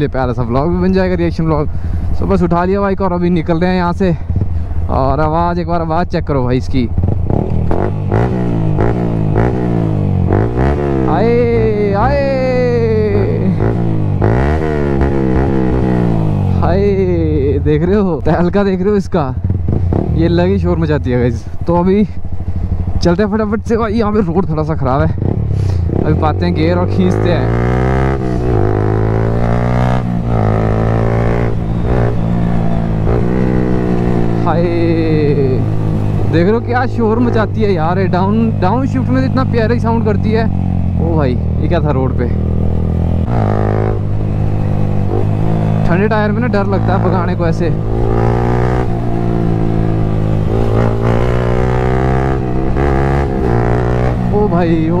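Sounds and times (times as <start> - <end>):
motorcycle accelerating hard: 6.9 - 18.3, 19.3 - 21.2, 24.8 - 55.0.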